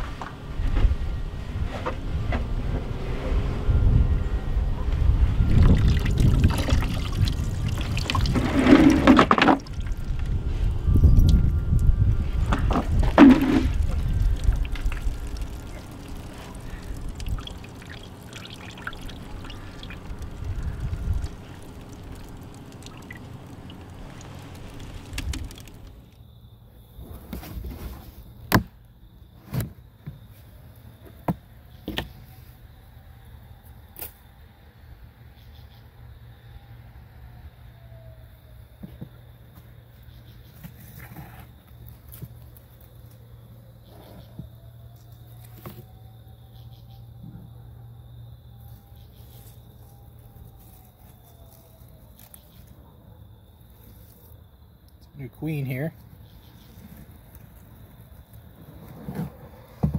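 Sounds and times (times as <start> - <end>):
water splashing and dripping: 5.5 - 10.4, 11.0 - 26.2.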